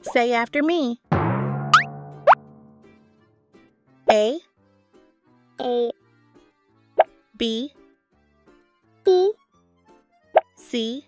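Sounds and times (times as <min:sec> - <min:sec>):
upward-sweeping cartoon pop: 0:01.1 - 0:03.0
low musical note: 0:01.1 - 0:03.4
children's background music: 0:04.0 - 0:11.0.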